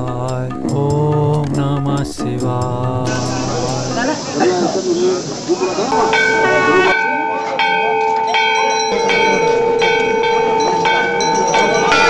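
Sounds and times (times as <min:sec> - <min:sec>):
steady held tone: 0:03.1 - 0:04.2, 0:05.7 - 0:12.0
temple bells ringing: 0:06.0 - 0:12.0.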